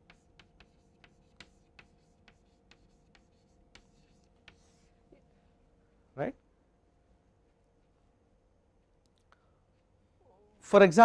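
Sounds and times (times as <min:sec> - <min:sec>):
chalk tapping on chalkboard: 0:00.0 - 0:04.9
faint steady hum: 0:00.0 - 0:11.0.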